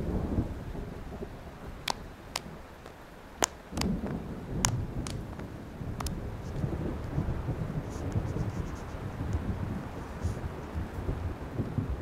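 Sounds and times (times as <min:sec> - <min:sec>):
rain: 0:00.0 - 0:12.0
thunder rumbling: 0:00.0 - 0:12.0
sharp clicks: 0:01.9 - 0:04.0.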